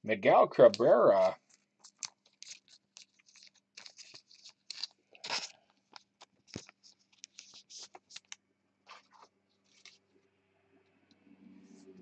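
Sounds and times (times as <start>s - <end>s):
papery rustle of cards: 0.6s - 10.0s.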